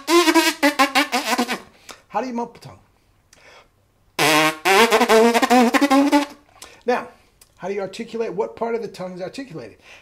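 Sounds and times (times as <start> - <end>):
trumpeter's lips buzzing: 0.0 - 1.7, 4.2 - 6.4.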